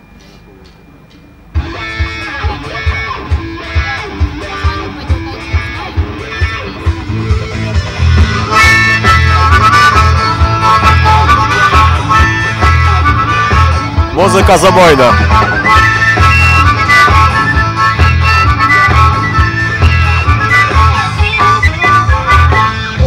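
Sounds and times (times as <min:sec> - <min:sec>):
band playing: 0:01.6 - 0:23.0
electric guitar: 0:01.6 - 0:23.0
harmonica: 0:01.6 - 0:23.0.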